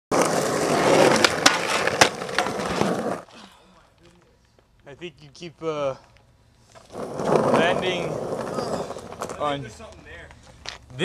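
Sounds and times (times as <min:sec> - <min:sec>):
skateboard clacks: 0:00.1 - 0:03.2
skateboard wheels rolling on asphalt: 0:00.1 - 0:03.3, 0:06.6 - 0:11.0.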